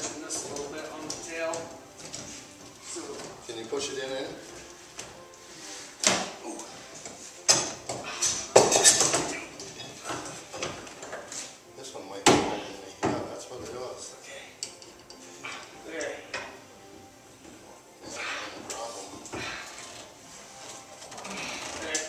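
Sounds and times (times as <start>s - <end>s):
metal clamps clanking on wood: 7.4s - 11.3s.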